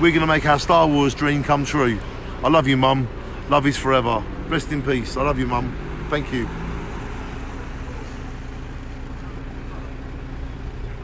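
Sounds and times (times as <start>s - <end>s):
street noise rumble and hiss: 0.0s - 11.0s.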